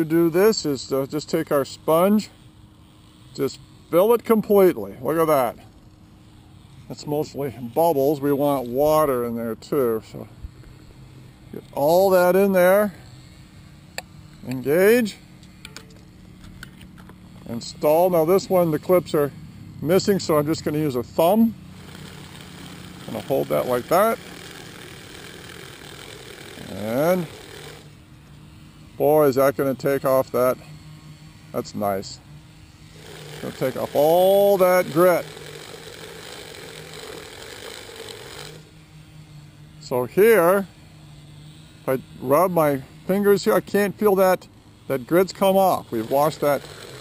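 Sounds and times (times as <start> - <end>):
bike chain scrubbing in cleaner: 0.0 - 47.0
steady low hum: 0.0 - 47.0.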